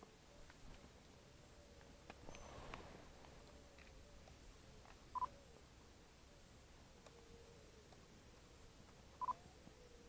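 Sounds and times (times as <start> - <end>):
rustle: 0.0 - 10.0.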